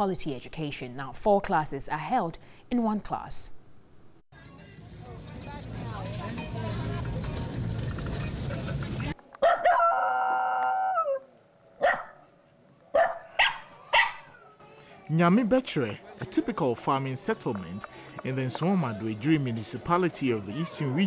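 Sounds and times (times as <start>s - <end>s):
murmur of voices: 13.7s - 21.0s.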